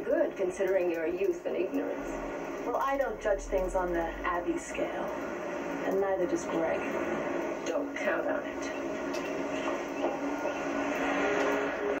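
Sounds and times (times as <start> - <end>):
television speaker hiss: 0.0 - 12.0.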